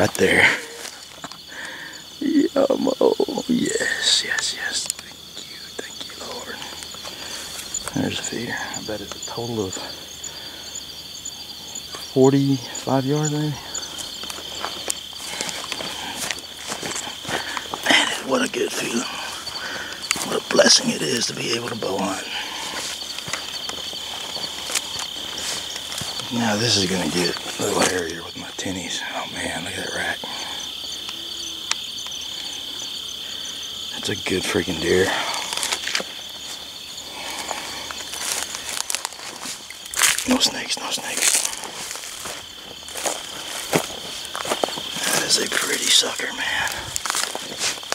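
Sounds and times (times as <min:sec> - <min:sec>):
footsteps crunching through dry grass: 0:00.0 - 0:01.5, 0:13.2 - 0:28.6, 0:34.8 - 0:47.9
high insect trill: 0:00.0 - 0:47.9
twigs and leaves crackling: 0:00.0 - 0:47.9.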